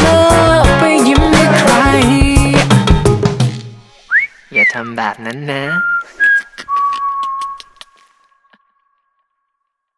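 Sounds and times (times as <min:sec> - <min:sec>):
person whistling: 0:04.1 - 0:04.9, 0:05.6 - 0:08.0.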